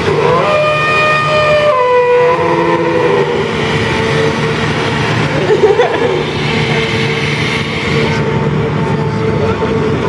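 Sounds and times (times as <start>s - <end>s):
hydraulic mechanical whine: 0.0s - 10.0s
low diesel engine drone: 0.0s - 10.0s.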